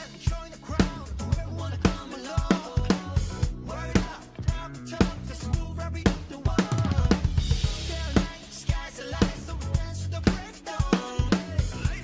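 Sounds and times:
backing track music: 0.0s - 12.0s
electronic drum kit pop groove: 0.0s - 12.0s.

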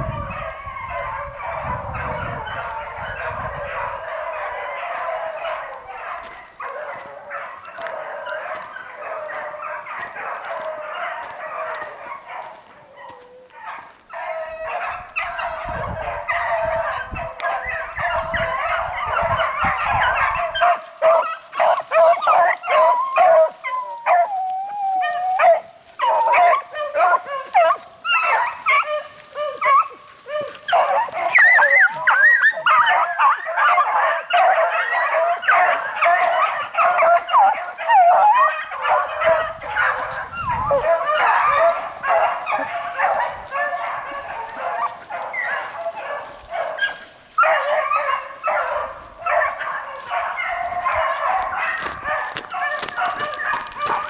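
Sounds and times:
hounds baying: 0.0s - 54.0s.

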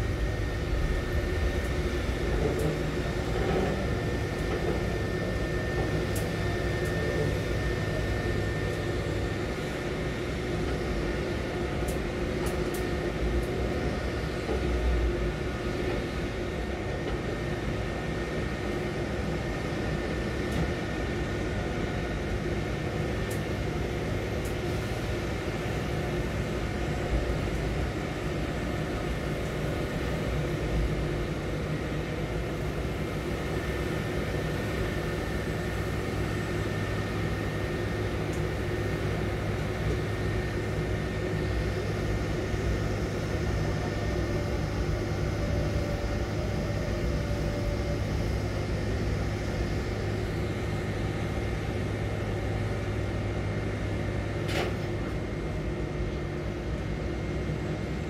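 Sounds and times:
crane machinery humming: 0.0s - 58.0s.

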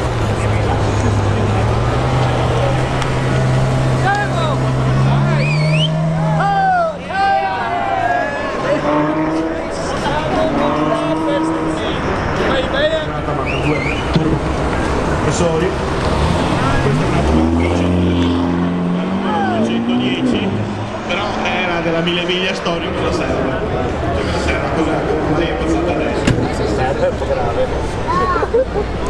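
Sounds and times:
car engine accelerating hard: 0.0s - 29.0s.

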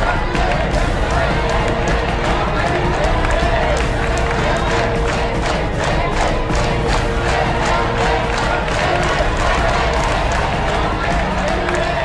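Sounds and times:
background music: 0.0s - 12.0s
crowd shouting and cheering: 0.0s - 12.0s.

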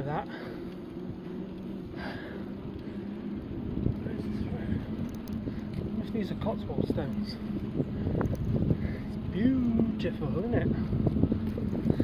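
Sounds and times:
steady low hum: 0.0s - 12.0s
tyre and road rumble: 0.0s - 12.0s
wind buffeting microphone: 0.0s - 12.0s.

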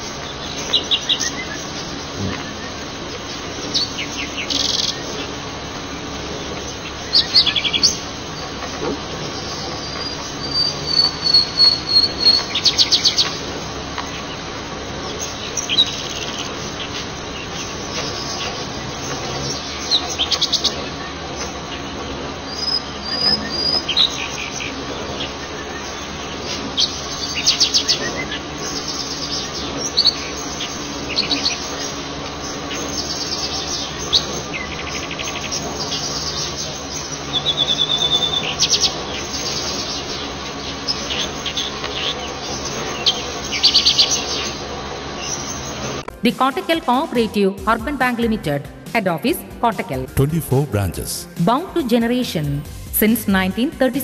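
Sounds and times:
birds chirping: 0.0s - 54.0s
steady low hum: 0.0s - 54.0s.

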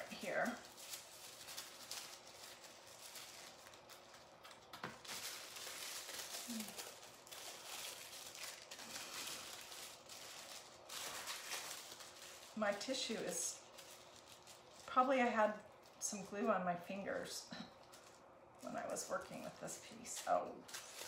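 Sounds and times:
tissue paper rustling: 0.0s - 16.3s, 17.7s - 21.0s.

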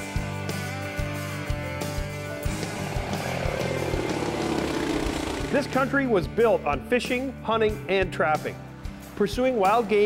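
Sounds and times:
background music: 0.0s - 10.0s
propeller plane engine passing: 2.5s - 5.9s.

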